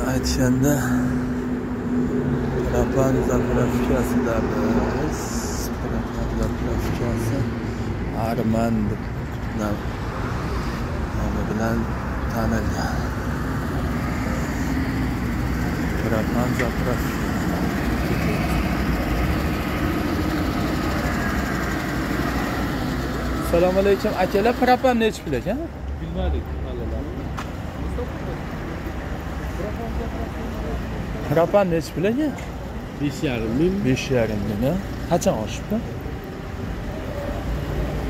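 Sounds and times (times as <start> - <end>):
vehicle engine rumbling: 0.0 - 38.0.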